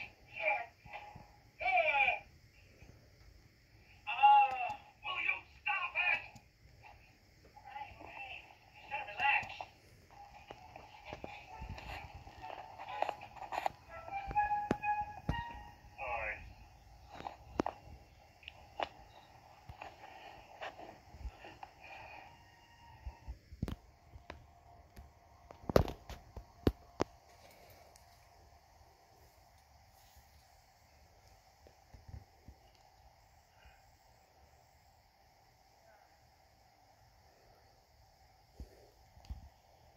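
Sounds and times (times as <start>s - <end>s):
cartoon soundtrack from tv: 0.0s - 2.4s, 3.8s - 27.2s.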